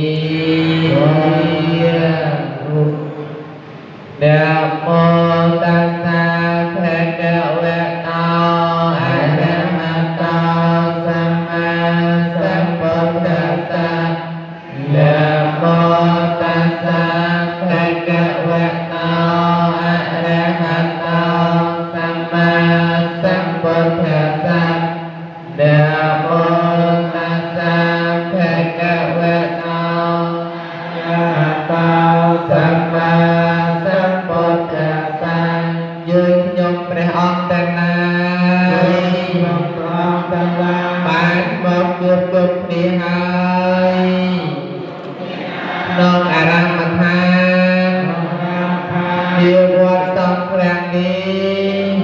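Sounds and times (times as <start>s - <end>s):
men chanting: 0.0s - 5.6s, 14.6s - 18.5s, 28.6s - 33.9s, 44.4s - 50.1s.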